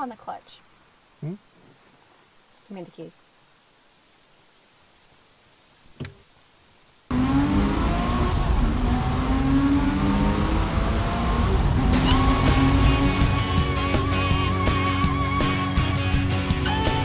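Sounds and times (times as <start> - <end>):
car engine accelerating hard: 7.1 - 13.9
song music: 11.1 - 17.0.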